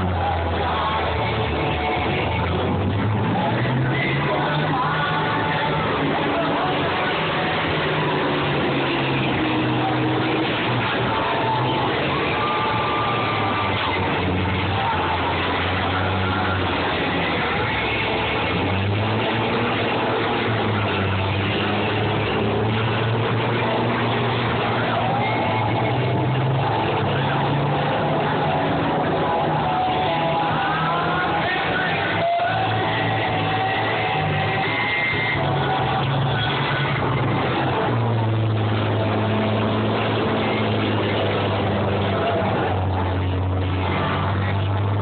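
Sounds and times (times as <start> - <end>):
combine harvester engines revving: 0.0 - 45.0.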